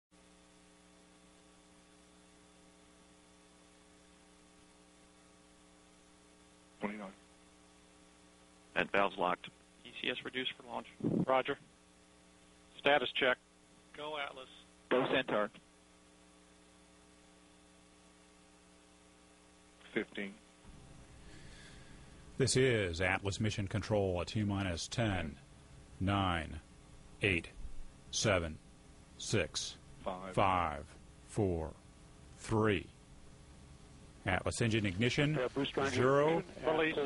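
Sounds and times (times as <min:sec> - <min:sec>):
faint electrical hum: 0:00.1 - 0:37.0
low hiss: 0:00.2 - 0:37.0
person speaking: 0:22.4 - 0:25.4, 0:26.0 - 0:26.6, 0:27.2 - 0:28.6, 0:29.2 - 0:31.8, 0:34.2 - 0:37.0.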